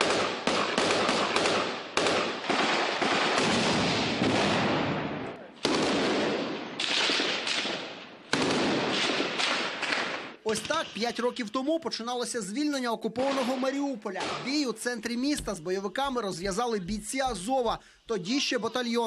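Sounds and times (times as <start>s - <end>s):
gunshots echoing: 0.0s - 11.0s, 13.2s - 14.7s.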